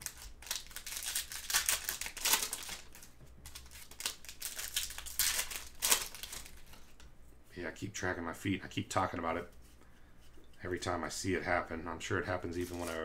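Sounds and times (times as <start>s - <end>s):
plastic wrapper crinkling: 0.0s - 7.0s, 12.4s - 13.0s
cards rustling: 0.0s - 7.1s, 12.3s - 13.0s.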